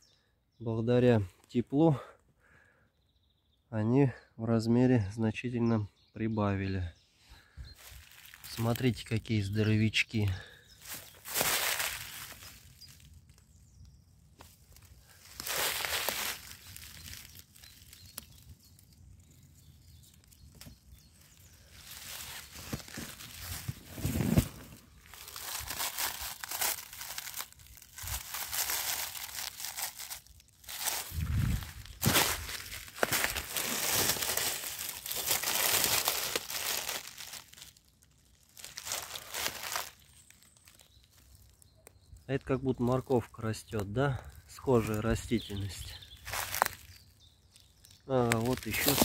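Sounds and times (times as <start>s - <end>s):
dry grass and leaves rustling: 7.4s - 49.0s
twig snapping: 14.4s - 18.4s, 25.0s - 31.1s, 31.8s - 37.8s, 46.2s - 47.0s, 48.3s - 49.0s.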